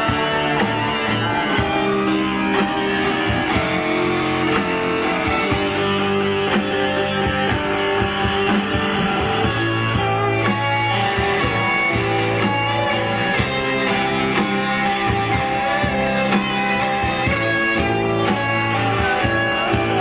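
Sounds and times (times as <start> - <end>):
guitars: 0.0 - 20.0
rock band playing: 0.0 - 20.0.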